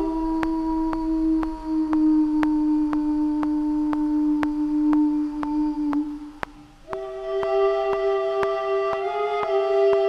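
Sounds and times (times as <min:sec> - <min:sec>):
held low synth note: 0:00.0 - 0:10.0
light ticking: 0:00.0 - 0:10.0.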